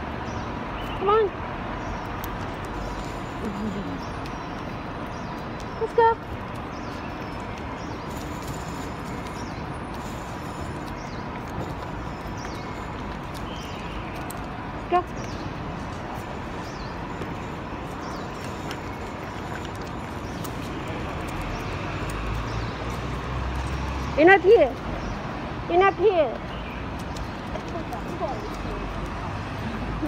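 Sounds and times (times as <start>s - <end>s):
street background noise: 0.0s - 30.0s.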